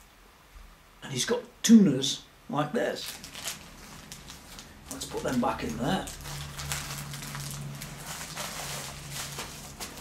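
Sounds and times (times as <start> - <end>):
steady low hum: 0.0 - 10.0
packet rustling and clicking: 3.0 - 10.0.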